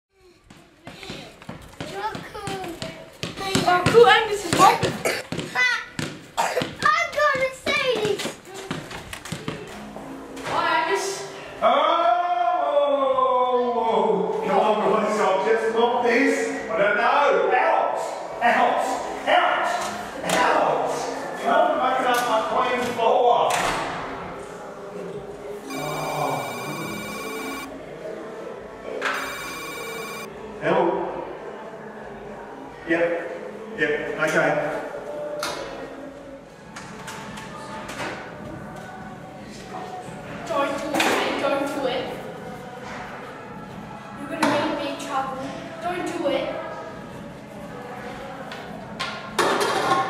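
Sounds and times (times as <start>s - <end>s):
children talking: 0.3s - 9.7s
electronic telephone ringing: 25.7s - 27.7s, 29.2s - 30.3s.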